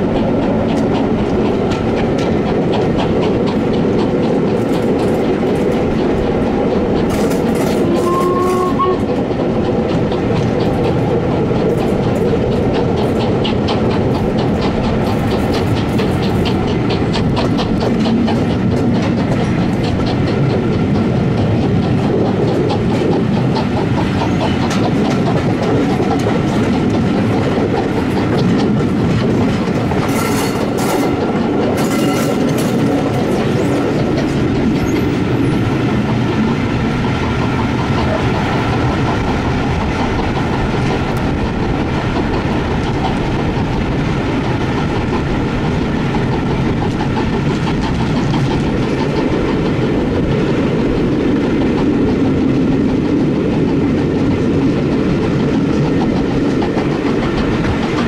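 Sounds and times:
steady train rumble: 0.0 - 58.0
train wheels clattering over joints: 0.0 - 58.0.

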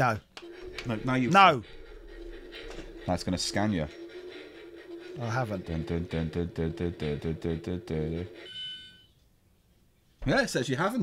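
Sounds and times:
rapid electronic pulsing: 0.0 - 8.6.

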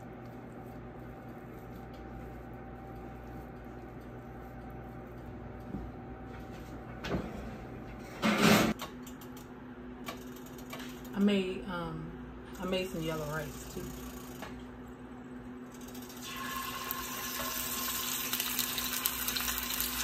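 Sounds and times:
steady low hum: 0.0 - 16.3.

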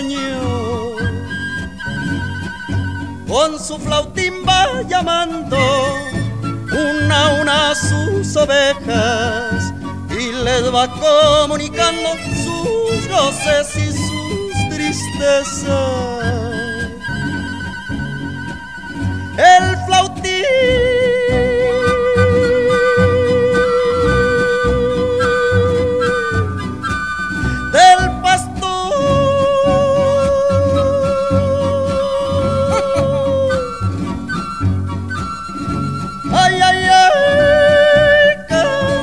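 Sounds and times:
man singing in falsetto: 0.0 - 34.7, 35.3 - 39.0
mariachi bass and guitar backing: 0.0 - 39.0.

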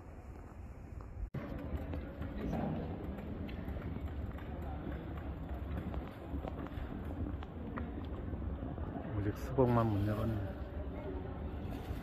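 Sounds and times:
low hum of large hall: 0.0 - 12.0.

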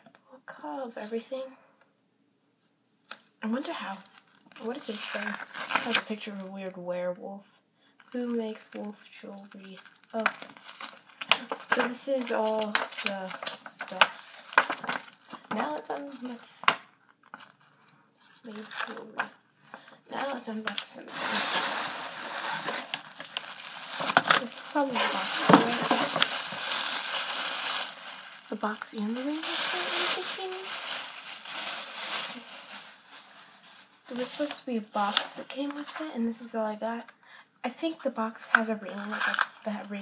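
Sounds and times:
packaging rustling and crinkling: 3.8 - 6.4, 9.4 - 36.1, 39.0 - 40.0.

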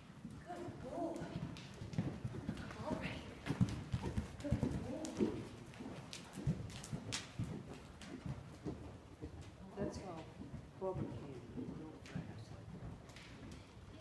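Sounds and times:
horse hoofbeats on soft dirt: 0.0 - 14.0.

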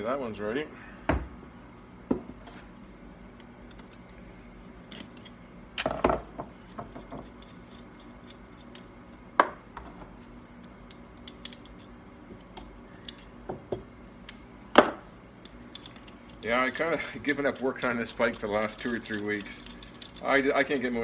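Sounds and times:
clicks of metal parts handled: 17.3 - 20.3.

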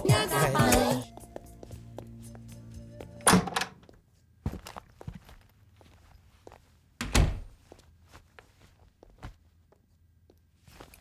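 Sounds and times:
footsteps: 3.8 - 9.9.

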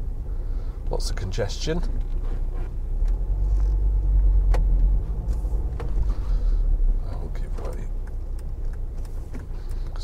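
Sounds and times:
engine and road rumble: 0.0 - 10.0.

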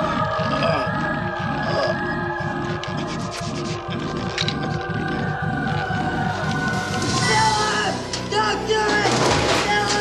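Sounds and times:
low throbbing pulse: 0.0 - 8.1.

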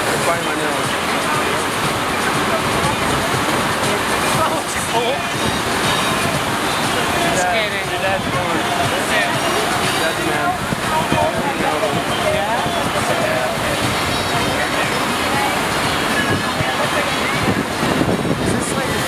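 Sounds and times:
voices: 0.0 - 19.0
water rushing from wave machine: 0.0 - 19.0.

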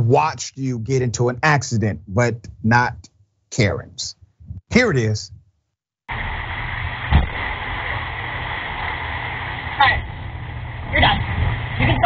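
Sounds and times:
faint steady whine: 6.1 - 12.0
low rumble and hiss: 6.1 - 12.0.

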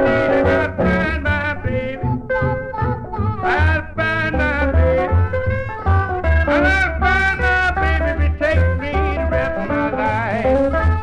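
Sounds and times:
blues lead melody with bent notes: 0.0 - 11.0
guitar: 0.0 - 11.0
pulsing bass line: 0.0 - 11.0.

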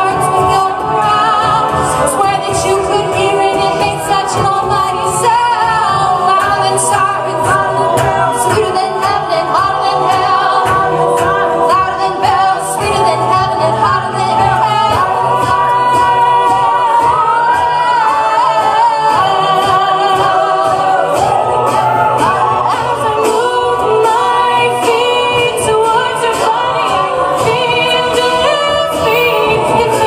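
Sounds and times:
beatboxed drum beat: 0.0 - 30.0
group singing harmonies: 0.0 - 30.0
woman singing lead: 0.0 - 30.0.

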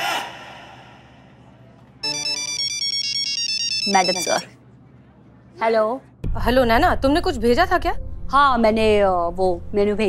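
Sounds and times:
phone ringtone melody: 2.0 - 4.5.

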